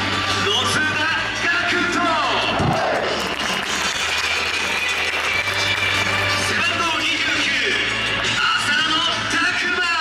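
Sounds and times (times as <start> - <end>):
crowd noise: 0.0 - 10.0
faint background music: 0.0 - 10.0.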